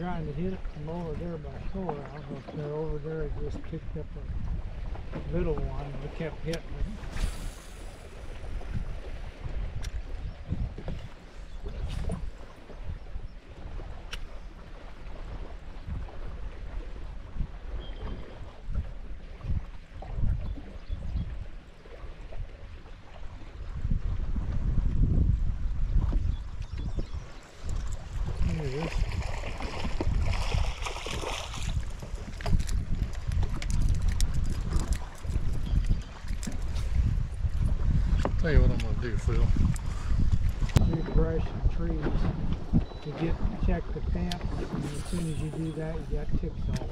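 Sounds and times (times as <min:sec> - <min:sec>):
water lapping at hull: 0:00.0 - 0:46.9
wind buffeting microphone: 0:00.0 - 0:46.9.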